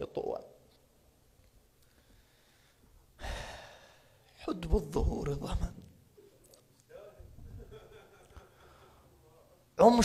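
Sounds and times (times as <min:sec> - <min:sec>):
man breathing: 0:01.8 - 0:04.3, 0:08.4 - 0:09.2.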